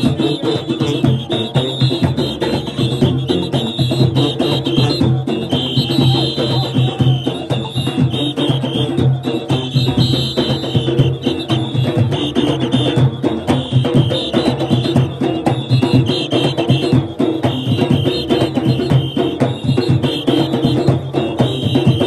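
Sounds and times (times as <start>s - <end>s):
drums beaten in driving rhythm: 0.0s - 22.0s
shrill whistle: 0.0s - 22.0s.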